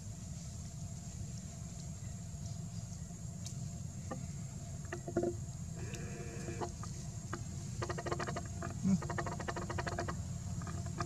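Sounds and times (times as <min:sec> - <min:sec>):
macaque calling: 0:07.8 - 0:11.0.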